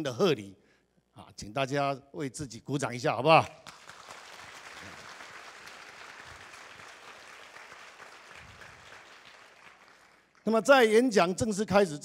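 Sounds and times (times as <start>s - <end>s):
audience applauding: 3.6s - 10.5s.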